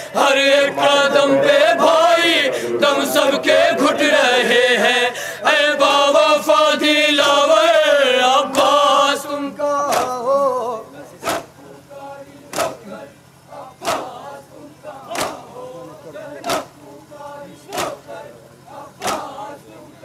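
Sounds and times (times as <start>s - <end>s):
men chanting into a microphone: 0.0s - 20.0s
hands slapping chest: 9.9s - 10.2s, 11.2s - 11.5s, 12.5s - 12.8s, 13.8s - 14.1s, 15.2s - 15.4s, 19.0s - 19.2s.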